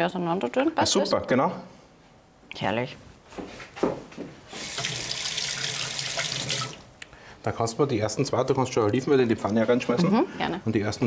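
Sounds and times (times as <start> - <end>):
tap running water into sink: 4.6 - 6.8.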